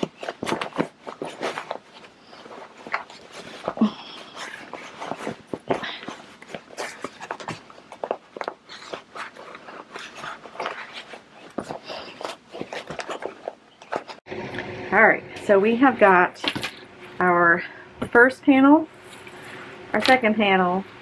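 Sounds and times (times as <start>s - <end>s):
fabric rustling and crinkling: 0.0s - 14.2s.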